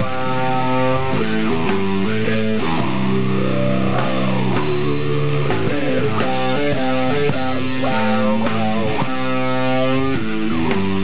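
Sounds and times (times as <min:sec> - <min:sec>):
bass guitar: 0:00.0 - 0:11.0
distorted electric guitar riffs: 0:00.0 - 0:11.0
drums: 0:00.0 - 0:11.0.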